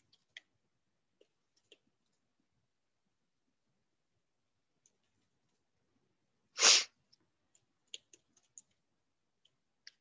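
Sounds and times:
person sneezing: 6.6s - 6.9s.

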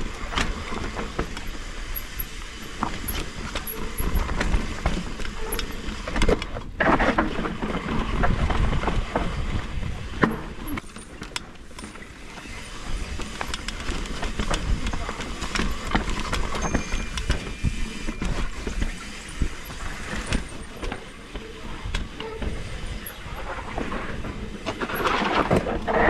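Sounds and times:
bike tyre noise and rattling: 0.0s - 26.0s.

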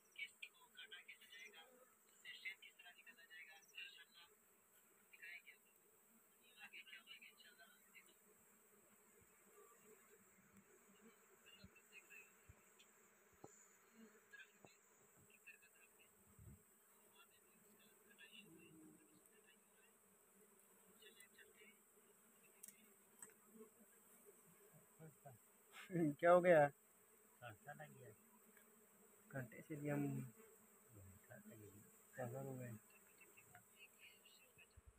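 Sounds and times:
honeybees buzzing: 0.0s - 34.9s.

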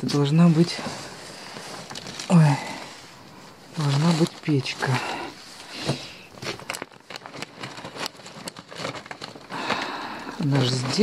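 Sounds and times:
rustling plastic bags: 0.0s - 11.0s.

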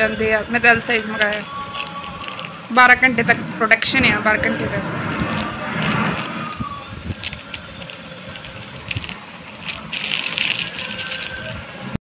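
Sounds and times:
plastic wrapping crinkling: 1.0s - 2.9s, 5.0s - 12.0s.

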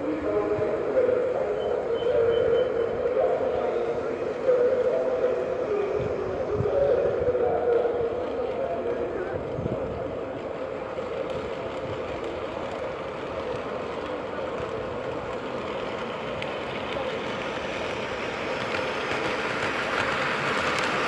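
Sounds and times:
model train rolling on track: 0.0s - 21.0s.

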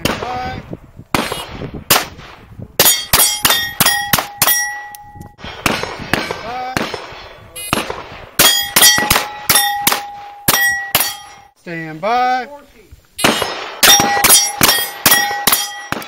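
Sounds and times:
pistol shots: 1.1s - 4.8s, 5.4s - 11.4s, 13.2s - 16.0s
steel plate ringing clang: 2.8s - 5.2s, 8.4s - 11.6s, 13.2s - 16.0s.

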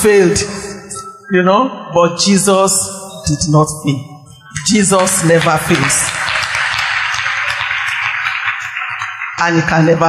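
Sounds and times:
audience applause: 4.8s - 10.0s.

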